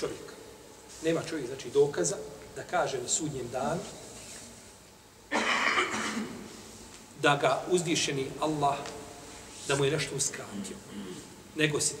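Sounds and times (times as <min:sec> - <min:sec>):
person coughing: 0:05.3 - 0:06.4, 0:10.5 - 0:11.3.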